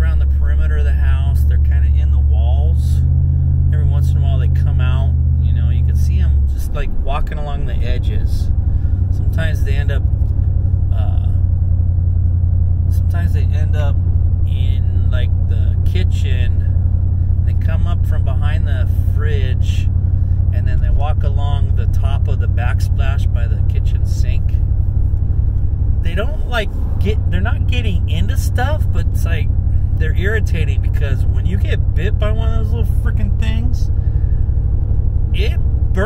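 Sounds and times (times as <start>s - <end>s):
man talking: 0.0s - 3.0s, 3.7s - 8.5s, 9.1s - 10.1s, 10.9s - 11.4s, 12.9s - 16.8s, 17.4s - 19.9s, 20.5s - 24.6s, 26.0s - 33.9s, 35.4s - 36.0s
car cabin road rumble: 0.0s - 36.0s.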